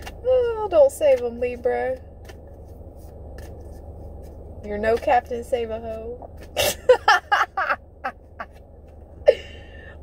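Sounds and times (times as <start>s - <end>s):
low hum inside car cabin: 0.0s - 10.0s.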